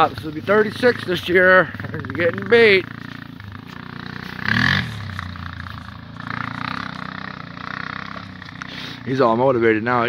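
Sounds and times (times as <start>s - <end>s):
atv engine running: 0.0s - 10.0s.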